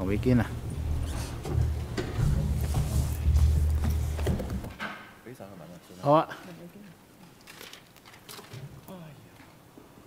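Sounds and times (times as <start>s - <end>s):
furniture moving: 0.6s - 4.9s
knocks and thumps: 1.4s - 5.1s.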